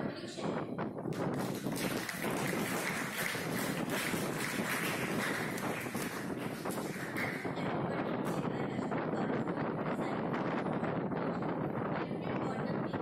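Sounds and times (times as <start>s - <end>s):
wind rushing on microphone: 0.0s - 13.0s.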